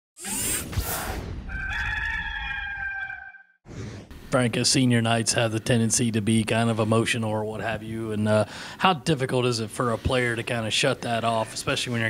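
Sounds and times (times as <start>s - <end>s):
rooster crowing: 1.5s - 3.6s.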